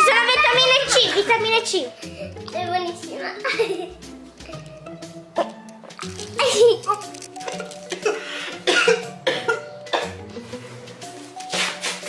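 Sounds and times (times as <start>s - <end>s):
woman coughing: 7.9s - 10.2s.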